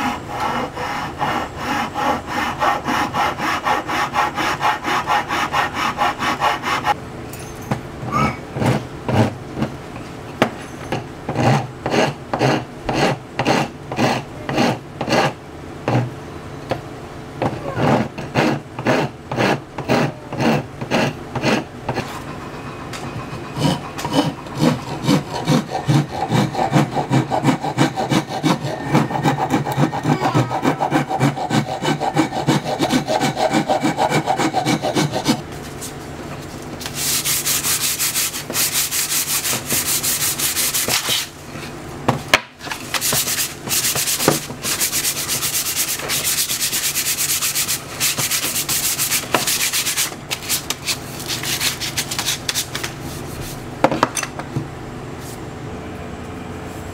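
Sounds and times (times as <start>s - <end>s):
file rasping on wood: 0.0s - 7.0s, 8.6s - 9.4s, 11.3s - 16.1s, 17.4s - 22.1s, 23.2s - 35.4s, 36.9s - 41.3s, 42.9s - 52.6s
hand sanding wood: 0.0s - 7.0s, 11.4s - 15.3s, 17.8s - 22.1s, 23.4s - 36.0s, 36.8s - 41.4s, 42.8s - 53.6s.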